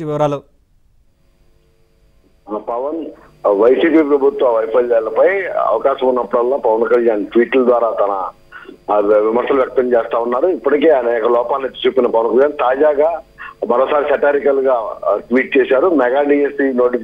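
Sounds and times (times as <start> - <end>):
man talking over telephone: 0.0 - 0.4, 2.5 - 17.0.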